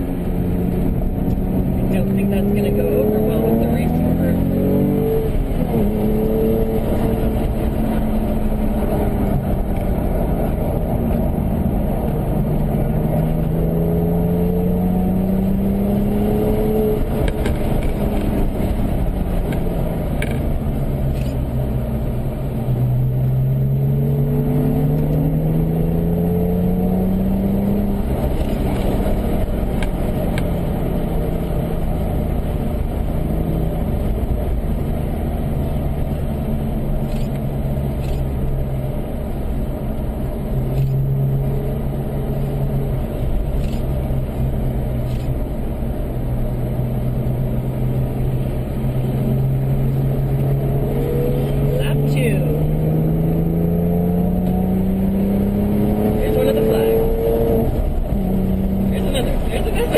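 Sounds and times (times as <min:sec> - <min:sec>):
car engine from inside: 0:00.0 - 0:59.9
road and wind noise: 0:00.0 - 0:59.9.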